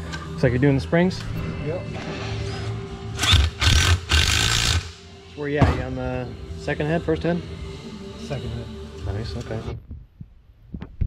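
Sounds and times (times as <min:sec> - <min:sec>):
handheld power tool running: 0:03.2 - 0:05.0.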